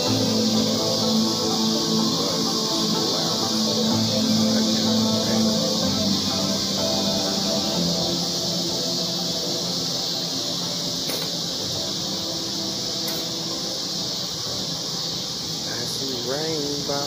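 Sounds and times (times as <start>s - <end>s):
faint held musical tones: 0.0s - 17.0s
high-pitched hiss: 0.0s - 17.0s.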